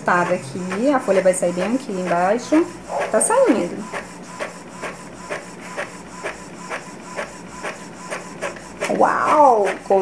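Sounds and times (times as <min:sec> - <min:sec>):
inkjet printer printing: 0:00.0 - 0:10.0.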